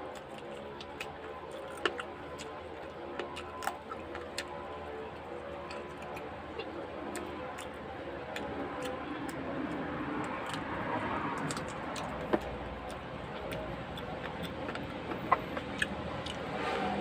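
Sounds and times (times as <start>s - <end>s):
person chewing and lip smacking: 0.0s - 16.5s
steady background hum: 0.0s - 17.0s.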